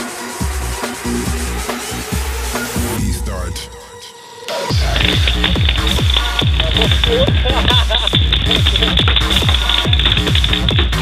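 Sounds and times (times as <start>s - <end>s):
electronic dance music: 0.0s - 11.0s
fast kick-drum beat: 4.7s - 11.0s.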